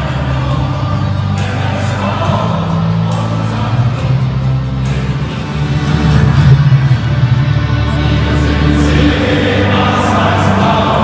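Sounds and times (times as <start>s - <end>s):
music: 0.0s - 11.0s
stadium crowd singing: 0.0s - 11.0s.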